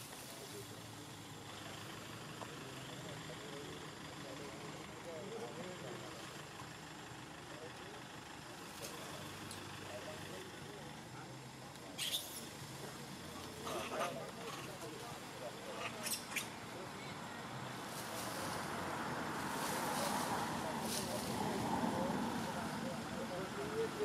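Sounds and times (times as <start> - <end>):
faint indistinct voices: 0.0 - 24.0.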